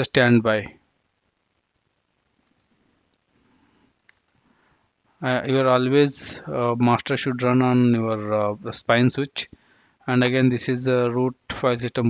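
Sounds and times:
faint clicks: 0:02.4 - 0:04.5.

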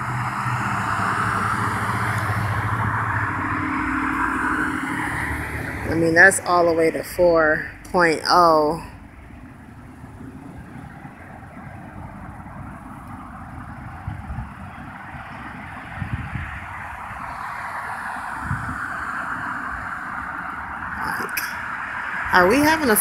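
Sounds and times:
distant road traffic: 0:00.0 - 0:23.0
vehicle approaching: 0:00.0 - 0:23.0.

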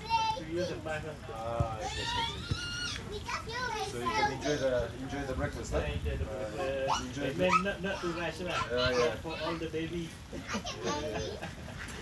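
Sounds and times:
children shouting: 0:01.8 - 0:04.7.

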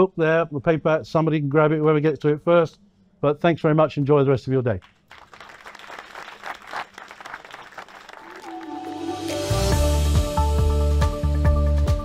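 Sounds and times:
audience applauding: 0:04.8 - 0:09.7
music with steady beat: 0:08.5 - 0:12.0.

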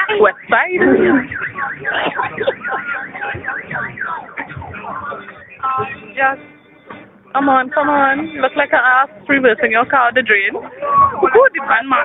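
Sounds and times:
car alarm siren warbling: 0:00.0 - 0:11.8.

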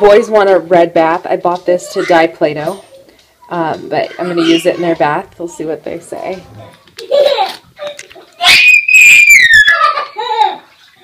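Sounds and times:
child shrieking: 0:08.4 - 0:10.2.

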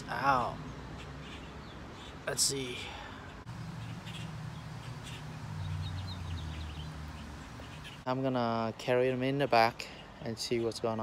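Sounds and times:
small bird chirping: 0:03.4 - 0:08.1.

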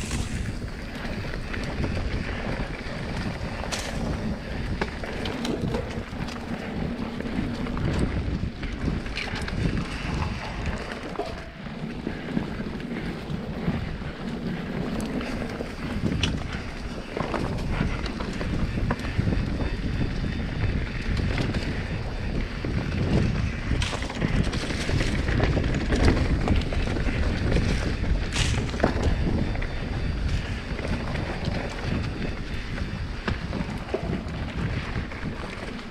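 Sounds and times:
bike clicks and rattles: 0:00.0 - 0:35.9
tyres rumbling on dirt: 0:00.0 - 0:35.9
wind buffeting microphone: 0:00.0 - 0:35.9.

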